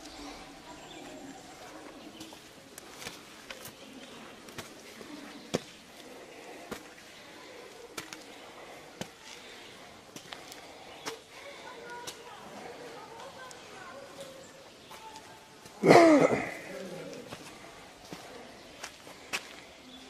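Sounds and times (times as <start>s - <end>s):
murmur of distant voices: 0.0s - 20.0s.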